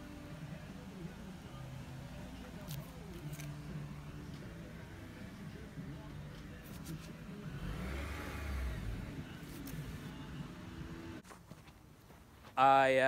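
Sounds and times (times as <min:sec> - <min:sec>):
distant vehicle engine: 0:00.0 - 0:11.2.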